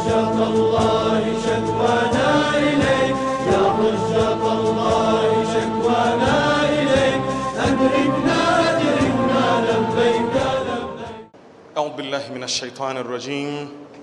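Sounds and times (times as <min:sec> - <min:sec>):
voices chanting over music: 0:00.0 - 0:11.3.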